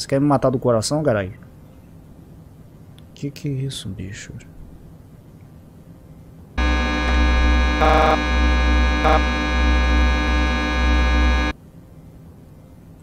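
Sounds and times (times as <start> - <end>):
deep hum: 6.6 - 11.5
electronic buzzing drone: 6.6 - 11.5.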